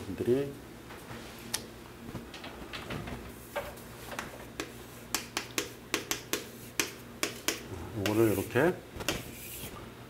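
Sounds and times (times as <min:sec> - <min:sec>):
chalk tapping on chalkboard: 0:04.6 - 0:08.5.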